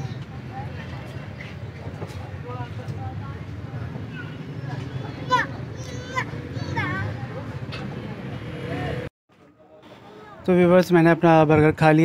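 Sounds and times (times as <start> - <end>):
traffic engine rumble: 0.0 - 9.1.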